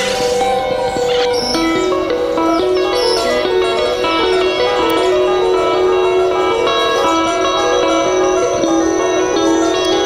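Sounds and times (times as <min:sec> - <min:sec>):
electric guitar and electronics music: 0:00.0 - 0:10.0.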